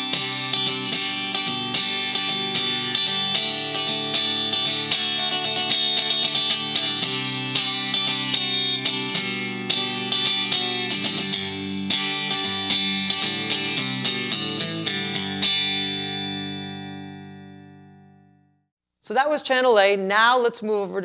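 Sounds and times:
clean electric guitar chords: 0.0 - 18.5.

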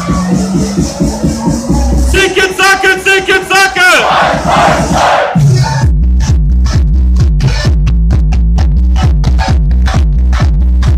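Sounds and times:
heavy bass beat: 0.0 - 10.9
party dance music: 0.0 - 10.9
crowd shouting: 3.5 - 5.4.

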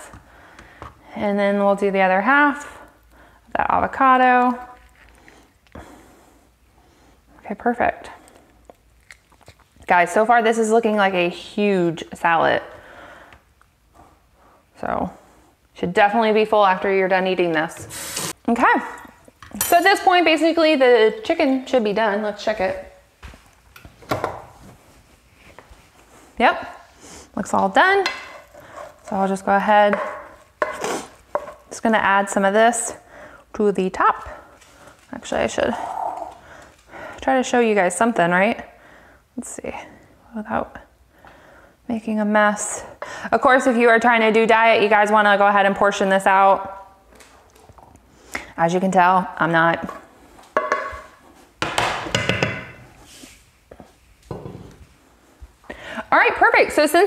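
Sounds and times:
cookware knocks: 50.6 - 51.0, 51.6 - 52.8.

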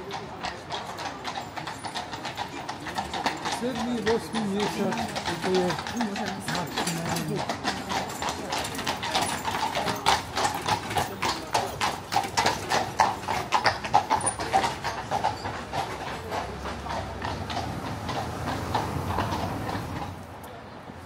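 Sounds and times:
horse hooves on stone street: 0.0 - 21.0.

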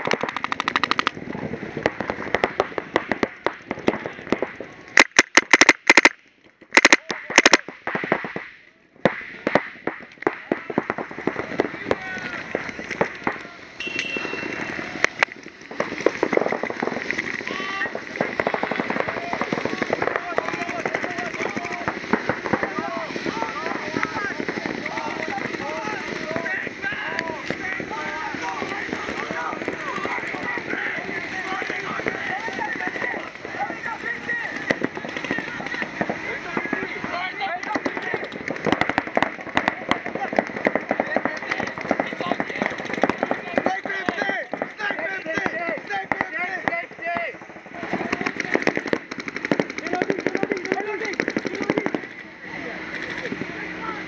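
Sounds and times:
paintball markers firing: 0.0 - 1.2, 1.8 - 52.2
many voices shouting: 11.3 - 15.2, 17.4 - 18.0, 18.7 - 38.2.

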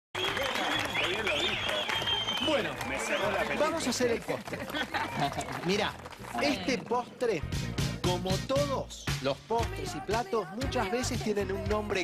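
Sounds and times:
hands clapping: 0.2 - 6.8
voices: 0.2 - 7.5.

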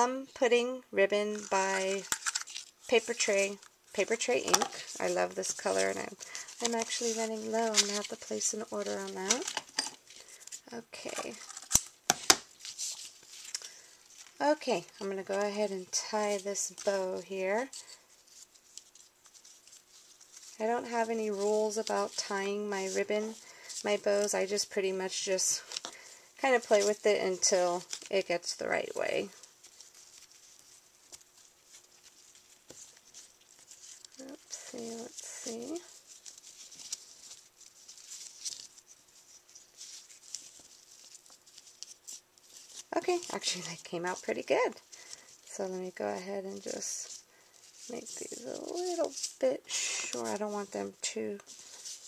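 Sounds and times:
ribbon rustling: 0.0 - 52.0.

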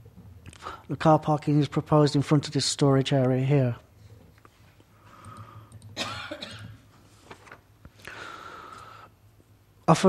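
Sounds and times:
person coughing: 6.0 - 6.9.

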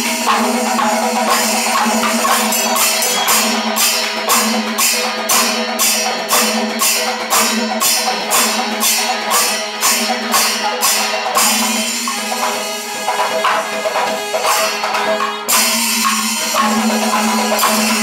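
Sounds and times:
barrel drumming: 0.0 - 18.0
hand cymbals clashing: 0.0 - 18.0.

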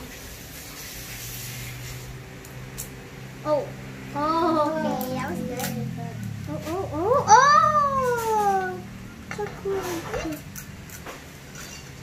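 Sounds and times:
child's wordless exclamation: 3.4 - 10.4.

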